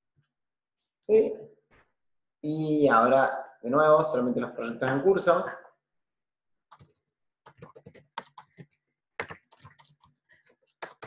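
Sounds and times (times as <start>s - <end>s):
computer keyboard typing: 6.7s - 10.2s, 10.8s - 11.0s.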